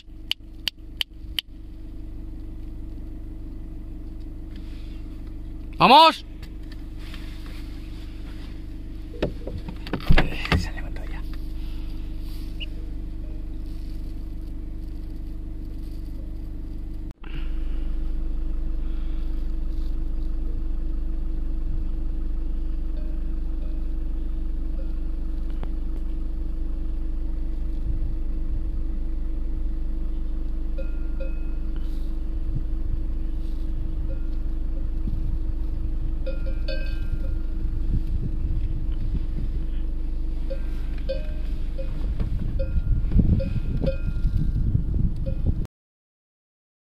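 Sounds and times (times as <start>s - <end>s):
vehicle engine rumbling: 0.0s - 45.7s
cowbells clinking: 30.8s - 31.8s, 36.3s - 37.6s, 40.5s - 42.0s.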